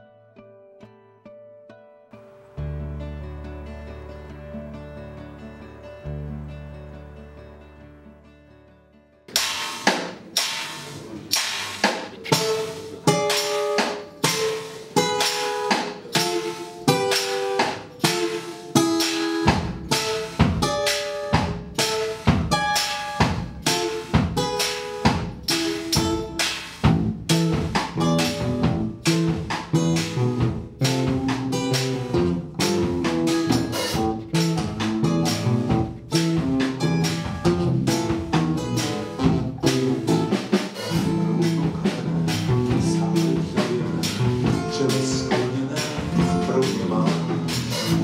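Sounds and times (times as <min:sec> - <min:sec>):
acoustic guitar: 0:00.0 - 0:48.0
bass guitar: 0:02.2 - 0:48.0
drum kit beat: 0:09.3 - 0:48.0.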